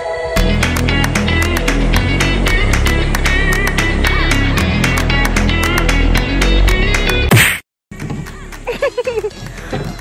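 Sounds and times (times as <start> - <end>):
background music: 0.0 - 7.3, 8.0 - 10.0.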